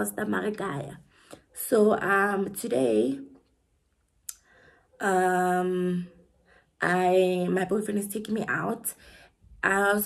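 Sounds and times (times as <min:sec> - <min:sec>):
woman speaking: 0:00.0 - 0:03.4, 0:05.0 - 0:06.1, 0:06.8 - 0:09.0, 0:09.6 - 0:10.0.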